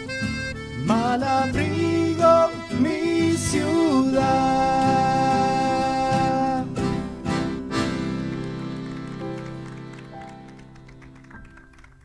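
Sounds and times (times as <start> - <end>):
acoustic ensemble held chord: 0.0 - 11.0.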